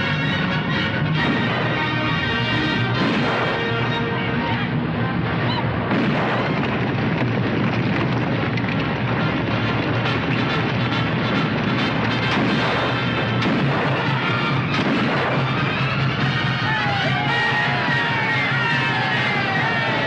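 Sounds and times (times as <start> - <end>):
dramatic film music: 0.0 - 6.7, 9.1 - 20.0
gunshots: 0.0 - 20.0.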